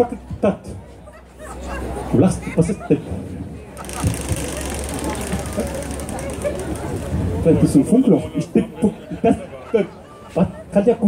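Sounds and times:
faint voices: 0.0 - 11.0
electrical hum and buzz: 3.8 - 7.5.

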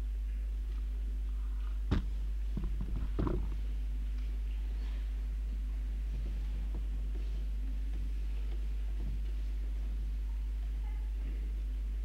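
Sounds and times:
low electrical hum: 0.0 - 12.0
soft knocks and shuffles: 1.7 - 11.6.

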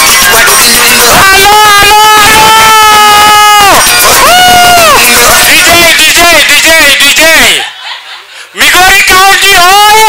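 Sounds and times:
man calling into microphone: 0.0 - 7.7, 8.6 - 10.0.

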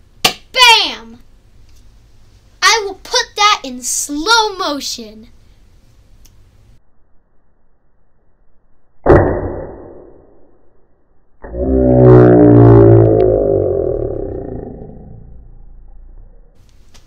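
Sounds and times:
long low drone falling in pitch: 11.4 - 16.6.

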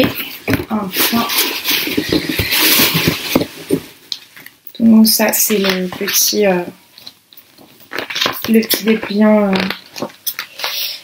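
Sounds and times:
plastic packaging crinkling: 0.0 - 4.4, 5.5 - 11.0.

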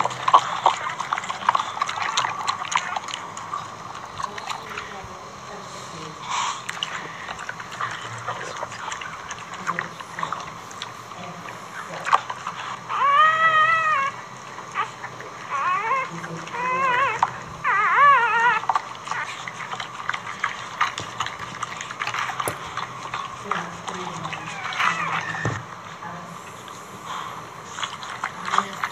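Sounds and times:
dog licking and rustling: 0.0 - 28.9
puppy squealing: 12.5 - 20.6, 23.9 - 25.7.

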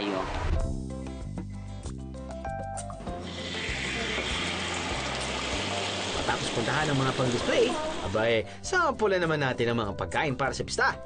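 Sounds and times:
food sizzling on hot plate: 3.2 - 8.3.

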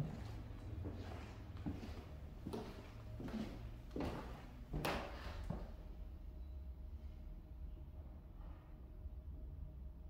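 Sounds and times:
footsteps on wooden floorboards: 0.0 - 5.7.

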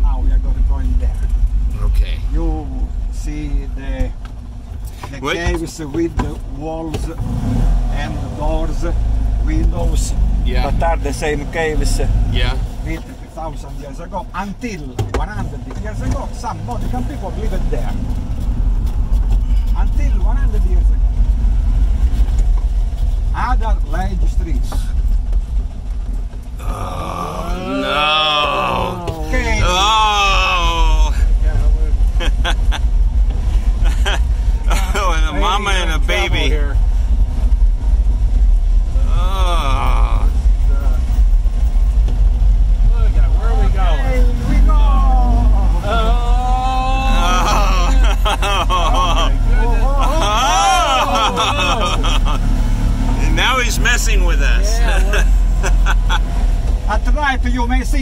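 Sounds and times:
car engine rumbling: 0.0 - 58.0
person talking: 26.6 - 31.2, 34.7 - 36.5, 44.4 - 52.4, 53.2 - 55.4.

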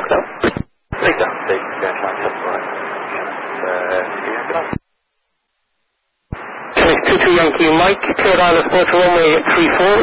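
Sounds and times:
pilot speaking over radio: 0.0 - 4.8, 6.8 - 10.0
radio hiss: 0.0 - 4.9, 6.3 - 10.0.

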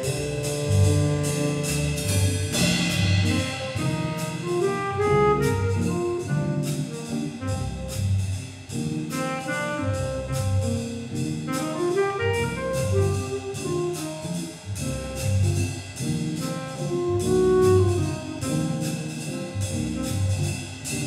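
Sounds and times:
cymbal strokes: 0.0 - 4.7
jazz big band playing: 0.0 - 21.0
saxophones and brass: 0.0 - 21.0.

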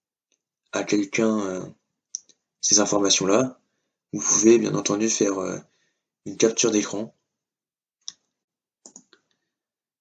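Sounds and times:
computer mouse clicks: 8.0 - 9.4.

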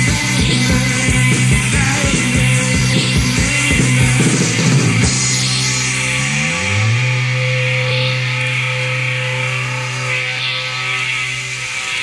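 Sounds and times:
electric guitar note ringing: 0.0 - 12.0.

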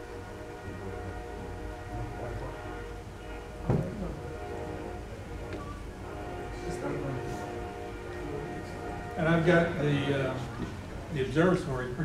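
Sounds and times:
steady hum: 0.0 - 12.0
knock: 3.6 - 4.0.

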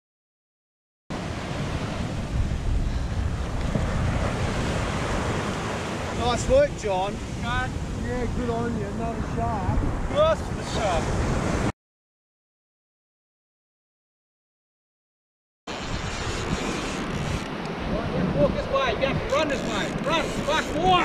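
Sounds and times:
surf breaking on a beach: 1.1 - 11.7, 15.7 - 21.0
wind rumbling on microphone: 1.1 - 11.7, 15.7 - 21.0.

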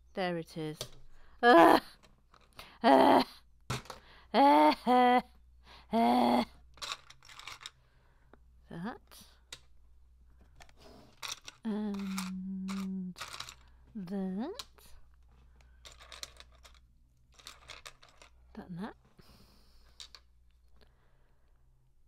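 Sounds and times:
person humming: 5.9 - 6.6, 11.6 - 13.2
plastic bricks clicking and rattling: 6.7 - 7.8, 10.6 - 13.8, 15.6 - 18.4, 19.9 - 20.3.

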